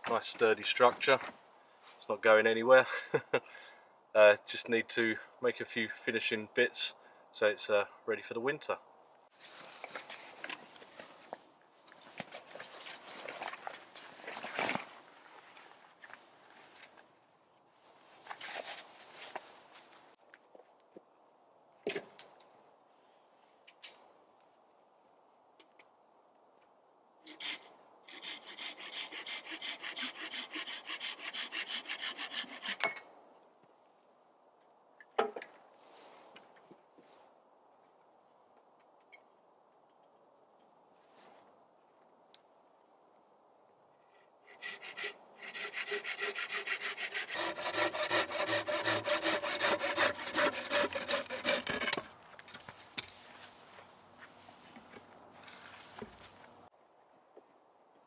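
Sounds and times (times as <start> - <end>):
hand saw cutting log: 27.3 - 33.0, 44.5 - 52.1.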